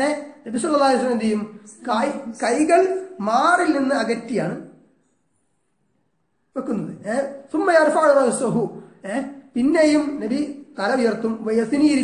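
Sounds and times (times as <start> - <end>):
man speaking: 0.0 - 4.9, 6.5 - 12.0.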